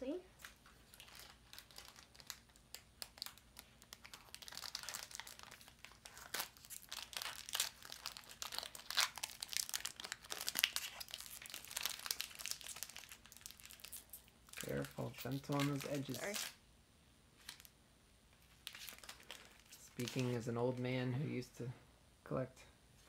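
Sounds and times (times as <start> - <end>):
foil wrapper crinkling: 0.4 - 16.6, 17.4 - 17.7, 18.4 - 20.5.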